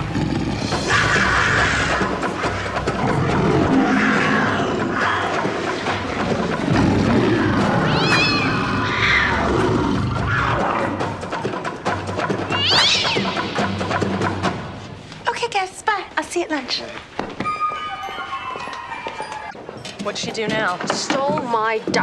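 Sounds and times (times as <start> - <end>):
music: 0.0 - 15.3
cat yowls: 7.8 - 9.4, 12.5 - 13.3.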